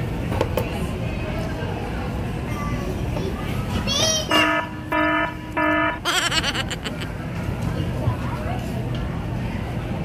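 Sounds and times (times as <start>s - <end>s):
child squealing: 6.0s - 7.1s.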